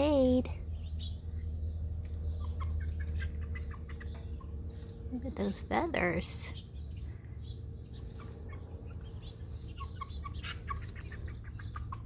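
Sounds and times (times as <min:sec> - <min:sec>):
steady low hum: 0:00.0 - 0:12.0
chicks cheeping: 0:00.1 - 0:12.0.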